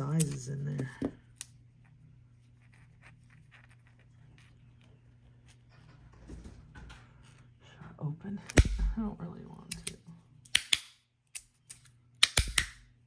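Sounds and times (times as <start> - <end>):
magnets snapping together: 9.7 - 12.8.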